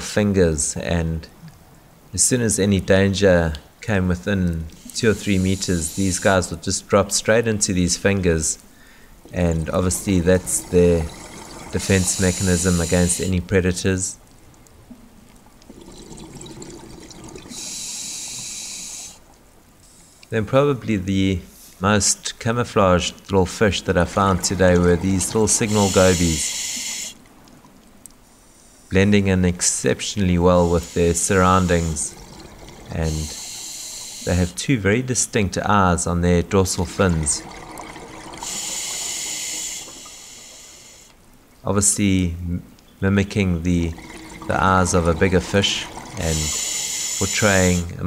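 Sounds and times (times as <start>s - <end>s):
inhaling hiss through regulator: 4.8s - 6.4s, 11.2s - 13.4s, 17.5s - 19.2s, 19.8s - 20.3s, 25.2s - 27.2s, 28.3s - 29.0s, 30.6s - 32.1s, 33.0s - 34.6s, 38.4s - 41.2s, 46.2s - 47.9s
bubbly exhaled air underwater: 9.2s - 13.3s, 15.6s - 17.9s, 23.8s - 27.0s, 30.7s - 34.2s, 43.7s - 47.8s.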